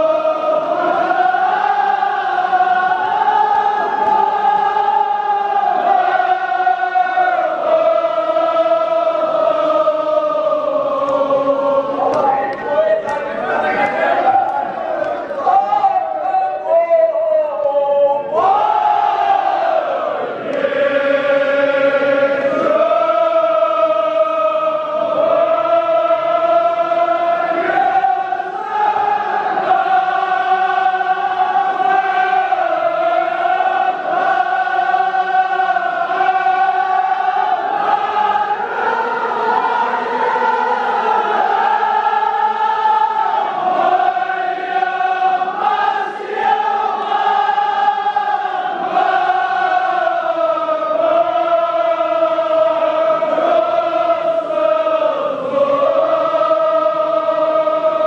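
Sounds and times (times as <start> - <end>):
men chanting in unison: 0.0 - 58.0.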